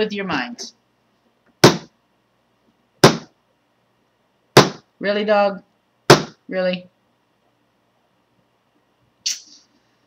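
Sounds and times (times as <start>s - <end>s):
sharp smack: 3.0s - 3.3s, 4.6s - 4.8s, 6.1s - 6.4s.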